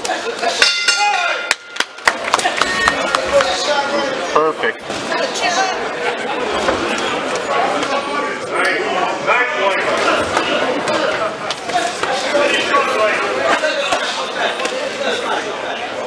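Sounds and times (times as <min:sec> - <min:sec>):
crowd and voices calling out: 0:00.0 - 0:16.0.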